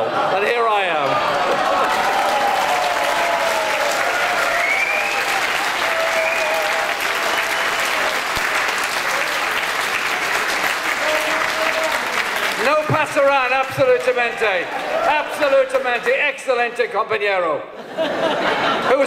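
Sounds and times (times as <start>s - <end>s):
audience applauding: 1.0s - 16.4s.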